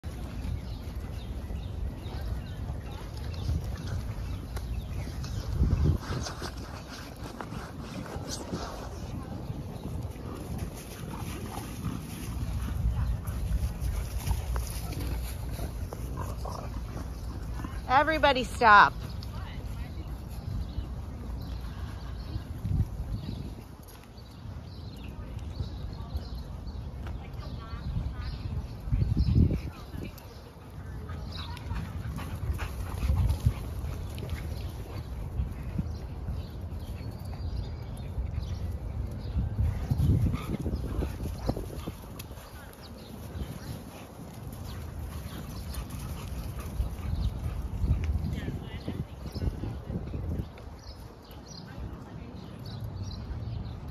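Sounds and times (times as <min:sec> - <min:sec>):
dogs play-wrestling: 0:02.9 - 0:17.9, 0:29.2 - 0:37.4, 0:39.9 - 0:47.9.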